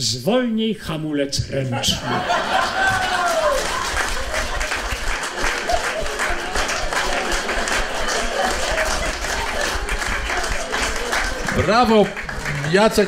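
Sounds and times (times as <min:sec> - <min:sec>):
audience applauding: 0:02.2 - 0:13.0.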